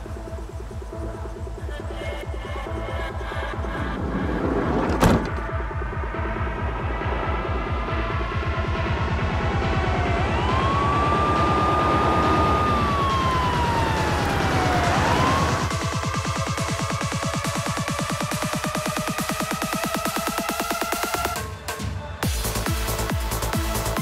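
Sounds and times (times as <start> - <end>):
dramatic electronic music: 0.0 - 24.0
siren wailing: 8.9 - 20.3.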